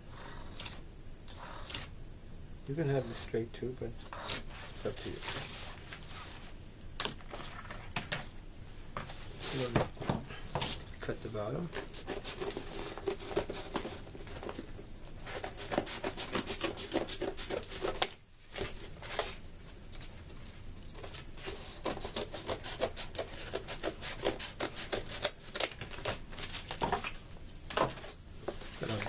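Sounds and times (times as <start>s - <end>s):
cardboard being cut: 11.7s - 14.6s, 15.2s - 19.3s, 21.0s - 26.8s.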